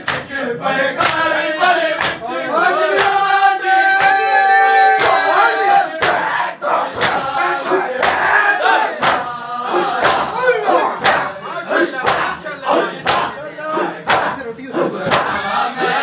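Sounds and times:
men slapping chests in unison: 0:00.0 - 0:04.3, 0:04.9 - 0:16.0
crowd of men chanting: 0:00.0 - 0:16.0.

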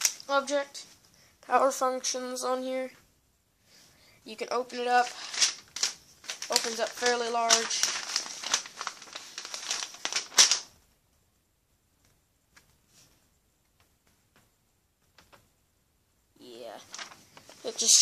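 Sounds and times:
paper leaflet crinkling: 0:04.5 - 0:10.8, 0:16.7 - 0:18.0.

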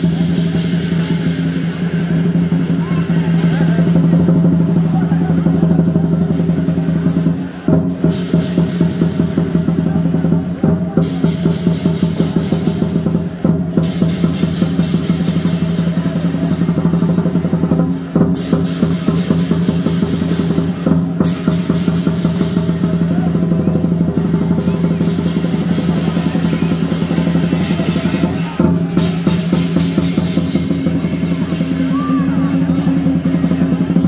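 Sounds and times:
cymbals clashing: 0:00.0 - 0:34.0
large drum beaten rapidly: 0:00.0 - 0:34.0.

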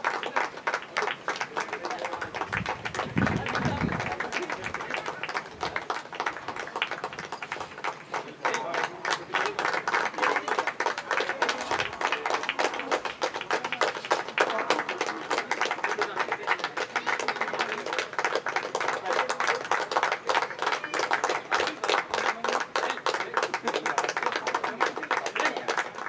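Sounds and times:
people clapping: 0:00.0 - 0:26.0.

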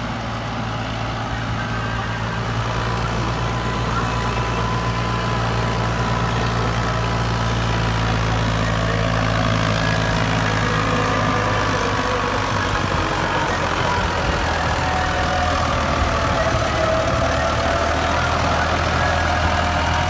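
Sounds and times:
diesel tractor engine running: 0:00.0 - 0:20.0.

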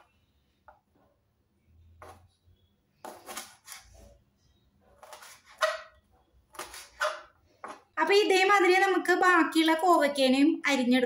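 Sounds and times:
knife slicing on plastic cutting board: 0:06.5 - 0:07.8.

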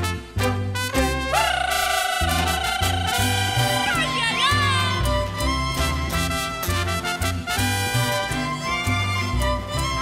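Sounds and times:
mariachi band playing: 0:00.0 - 0:10.0.

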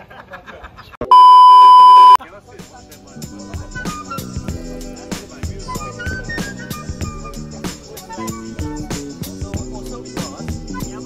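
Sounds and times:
loud steady test tone beep: 0:01.1 - 0:02.2
background music with steady beat: 0:02.2 - 0:11.0.

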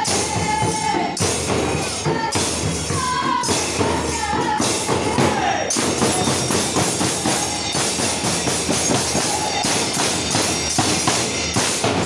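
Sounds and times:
drum beats: 0:00.0 - 0:12.0
hand cymbals clashing: 0:00.0 - 0:12.0.

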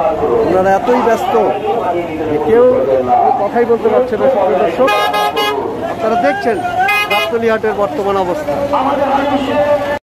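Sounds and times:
men's voices: 0:00.0 - 0:10.0
truck horn honking: 0:04.8 - 0:05.7, 0:06.8 - 0:07.5.

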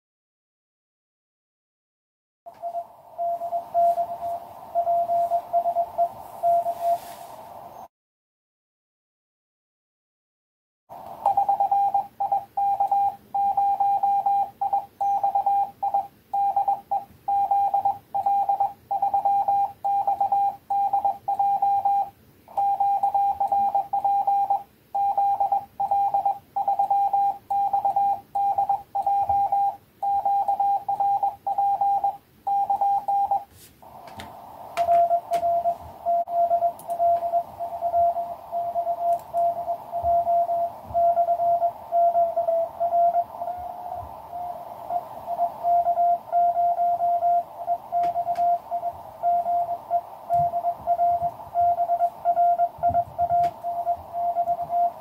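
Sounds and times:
morse code tone: 0:02.5 - 0:07.2, 0:11.2 - 0:34.0, 0:34.7 - 0:55.0
radio receiver hiss: 0:02.5 - 0:07.9, 0:10.9 - 0:12.6, 0:32.7 - 0:55.0
clicks: 0:33.8 - 0:38.2, 0:39.0 - 0:41.1, 0:48.0 - 0:48.6.

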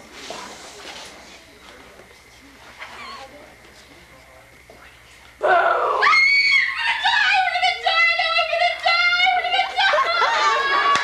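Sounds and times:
girl screaming: 0:05.4 - 0:11.0.

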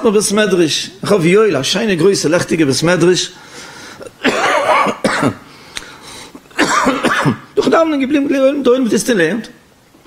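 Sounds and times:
man coughing: 0:04.0 - 0:05.5, 0:06.5 - 0:07.8.

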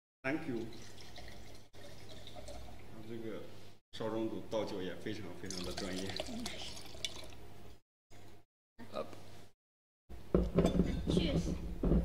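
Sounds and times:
wine pouring into a glass: 0:00.4 - 0:03.0, 0:05.4 - 0:07.4.

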